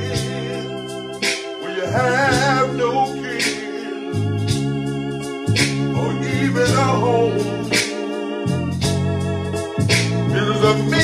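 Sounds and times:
electronic keyboard chords: 0.0 - 11.0
man singing gospel: 1.4 - 4.4, 5.8 - 8.0, 10.3 - 11.0.

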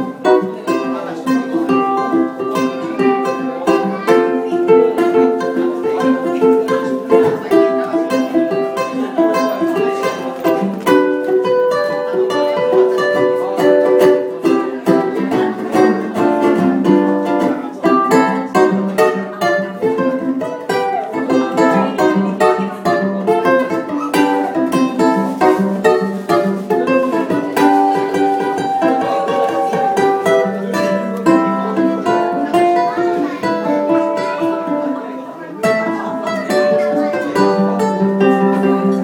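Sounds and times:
ukulele playing melody: 0.0 - 39.0.

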